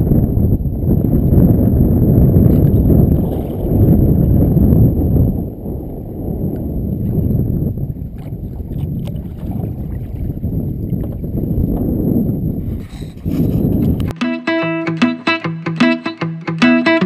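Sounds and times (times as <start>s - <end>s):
wind buffeting microphone: 0.0s - 14.1s
faint small splashes: 8.0s - 11.4s.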